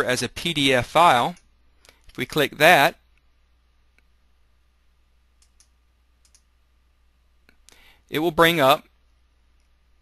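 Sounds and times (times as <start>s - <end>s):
computer mouse clicks: 5.4s - 6.5s
soft breath: 7.5s - 8.1s.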